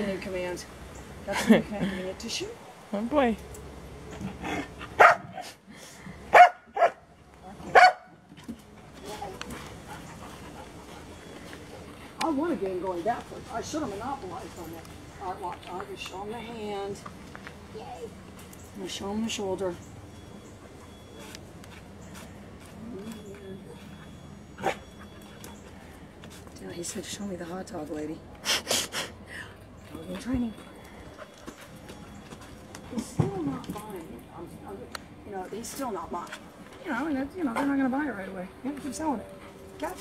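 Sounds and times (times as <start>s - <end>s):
dog barking: 5.0s - 5.5s, 6.3s - 7.1s, 7.7s - 8.1s, 24.6s - 25.0s
dog yipping: 5.0s - 5.5s, 24.1s - 25.6s.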